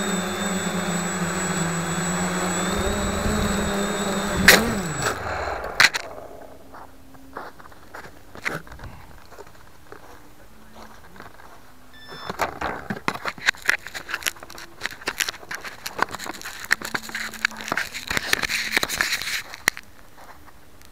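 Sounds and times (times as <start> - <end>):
fingers rubbing on camera microphone: 13.2 - 19.8.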